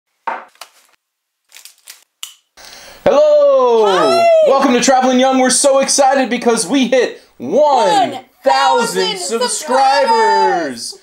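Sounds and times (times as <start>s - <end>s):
faint hiss: 2.6s - 3.8s, 5.6s - 8.4s
voices with long falling cry: 3.0s - 5.2s, 7.8s - 11.0s.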